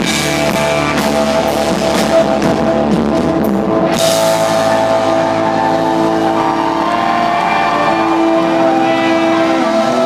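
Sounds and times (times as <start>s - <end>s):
sustained electric guitar chords: 0.0s - 10.0s.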